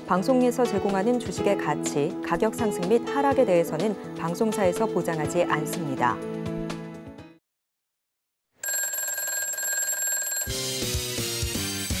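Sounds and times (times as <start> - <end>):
telephone ringing: 8.6 - 11.0.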